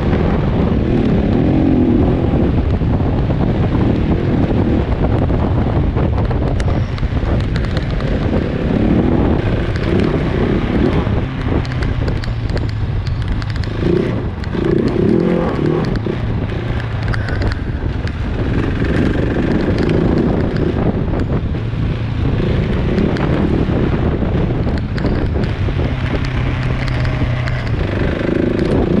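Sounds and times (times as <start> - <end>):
motorcycle engine running: 0.0 - 29.0
wind on microphone: 0.0 - 29.0
tyres on snow and ice: 4.0 - 29.0.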